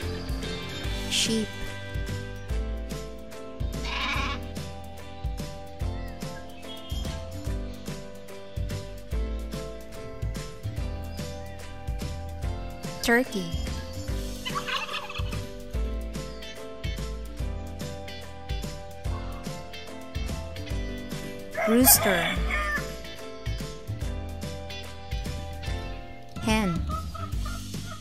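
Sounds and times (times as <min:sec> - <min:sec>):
background music with beat: 0:00.0 - 0:26.0, 0:26.6 - 0:28.0
sheep bleating: 0:03.8 - 0:04.5
turkey gobble: 0:14.4 - 0:15.4, 0:21.6 - 0:22.8, 0:26.8 - 0:28.0.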